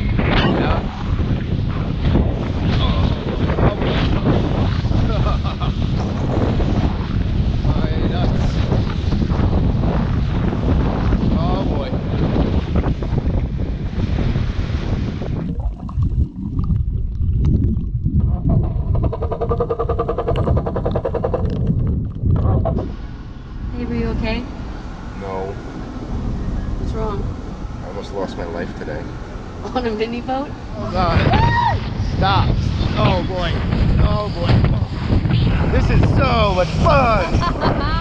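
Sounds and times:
small boat running fast: 0:00.0 - 0:16.7, 0:18.7 - 0:38.0
steady droning tone: 0:00.0 - 0:38.0
water rushing past hull: 0:00.0 - 0:38.0
wind buffeting microphone: 0:00.0 - 0:38.0
muffled underwater sound: 0:15.3 - 0:24.4.

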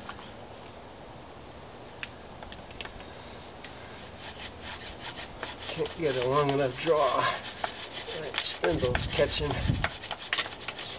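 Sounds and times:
wooden spindle grinding: 0:04.0 - 0:10.9.

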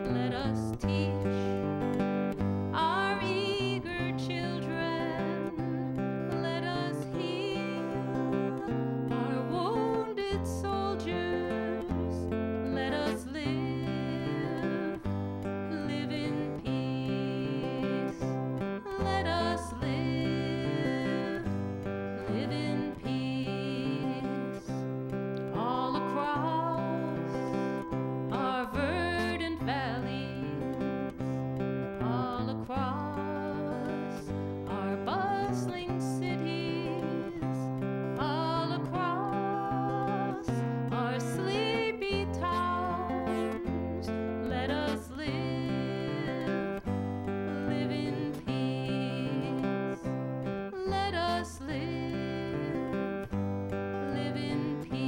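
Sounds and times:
acoustic guitar strumming: 0:00.0 - 0:55.0
woman singing: 0:00.0 - 0:55.0.

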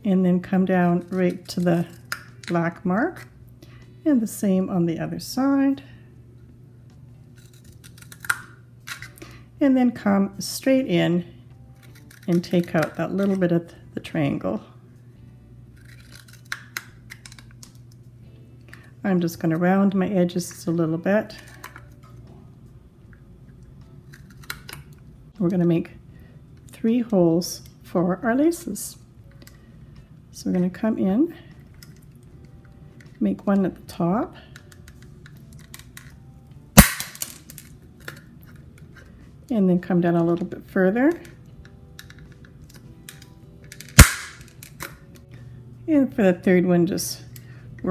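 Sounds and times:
scissors snipping paper cup: 0:11.8 - 0:13.4.

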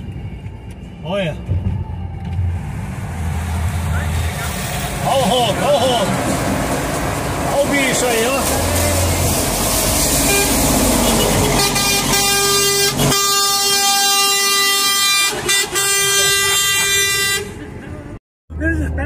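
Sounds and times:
road noise inside car: 0:00.0 - 0:19.0
truck air horn blast: 0:10.0 - 0:17.6.

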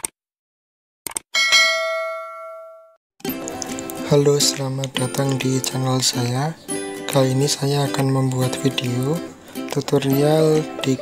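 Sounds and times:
bell ding: 0:01.4 - 0:03.0
background music: 0:03.2 - 0:11.0.

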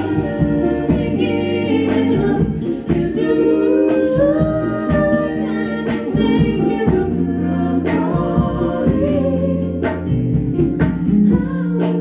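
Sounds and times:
backing singers harmonising: 0:00.0 - 0:12.0
bass line: 0:00.0 - 0:12.0
woman singing lead: 0:00.0 - 0:12.0.

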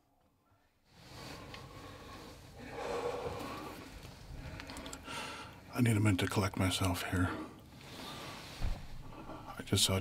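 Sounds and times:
man breathing heavily: 0:01.1 - 0:05.6.

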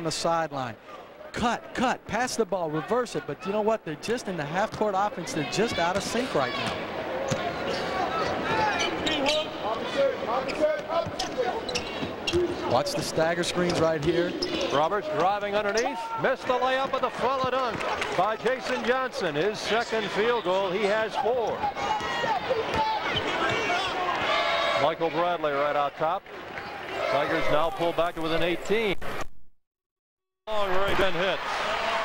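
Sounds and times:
arena crowd: 0:00.0 - 0:29.2, 0:30.5 - 0:32.0
sneakers squeaking on court: 0:05.7 - 0:09.6, 0:10.4 - 0:12.8, 0:13.5 - 0:14.8
people shouting: 0:21.2 - 0:24.9.

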